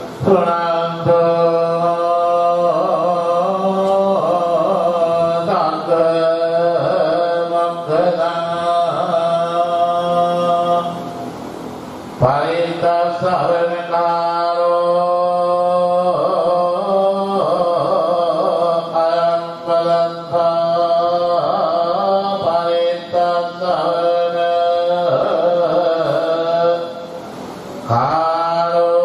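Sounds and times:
monk chanting through a microphone: 0.0s - 11.2s, 12.2s - 27.2s, 27.8s - 29.0s.

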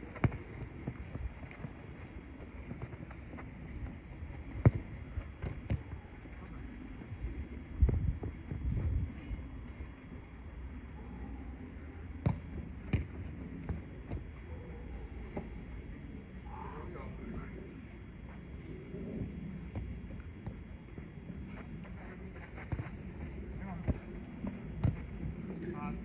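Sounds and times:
wind rumbling on microphone: 0.0s - 10.3s
football kick thuds: 4.6s - 5.9s, 12.2s - 14.2s.

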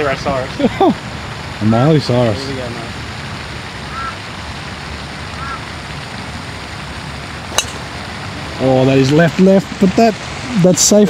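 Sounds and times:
steady hiss: 0.0s - 11.0s
golf club striking ball: 7.4s - 8.1s.

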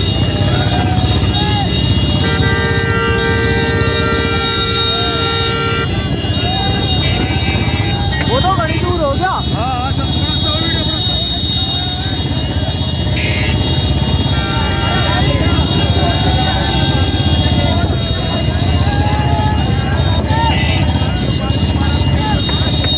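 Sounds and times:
people shouting: 0.0s - 22.9s
vehicle engines and road noise: 0.0s - 22.9s
vehicle horn: 0.0s - 22.9s.

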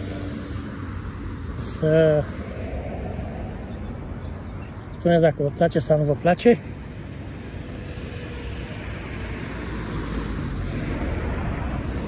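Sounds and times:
cars passing: 0.0s - 12.0s.

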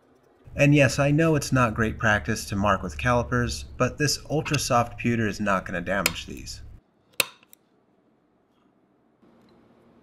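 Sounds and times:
center punch snapping click: 5.8s - 7.5s.

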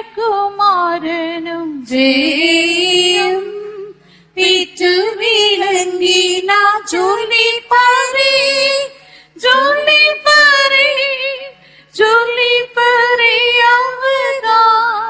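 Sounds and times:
woman singing a hymn: 0.0s - 15.0s
singer breathing: 4.0s - 4.4s, 9.0s - 9.4s, 11.5s - 12.0s.

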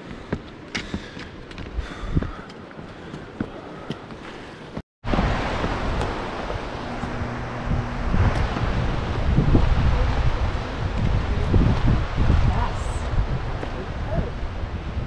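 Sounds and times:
wind buffeting microphone: 0.1s - 3.4s, 5.0s - 15.0s.

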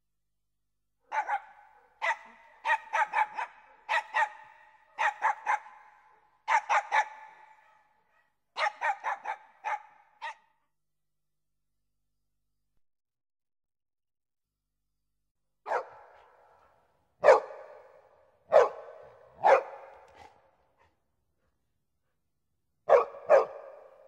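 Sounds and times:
dog barking with echo: 1.0s - 10.6s, 15.6s - 21.5s, 22.8s - 24.0s.

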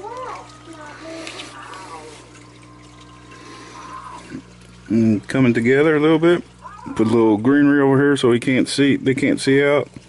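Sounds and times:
low electrical hum: 0.0s - 10.0s
water trickling into bowl: 0.0s - 10.0s.

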